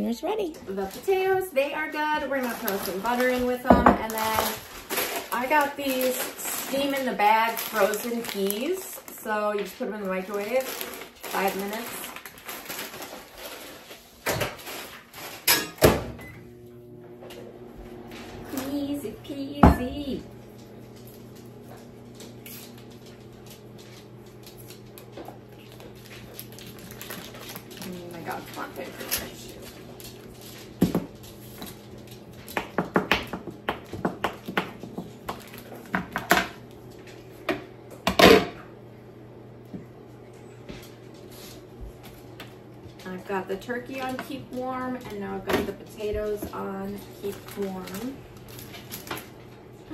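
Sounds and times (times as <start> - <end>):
microwave oven humming: 0.0 - 49.9
dishes clattering on a counter: 3.6 - 4.5, 15.4 - 16.1.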